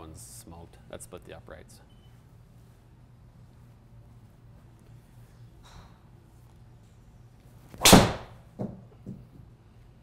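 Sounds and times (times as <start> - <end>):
golf driver striking ball: 7.8 - 8.4
ball hitting impact screen: 7.8 - 8.8.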